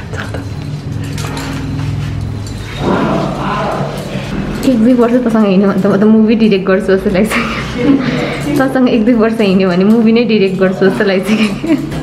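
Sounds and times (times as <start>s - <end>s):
light clinks: 0.0s - 3.1s, 3.7s - 6.5s, 7.8s - 12.0s
steady low hum: 0.0s - 12.0s.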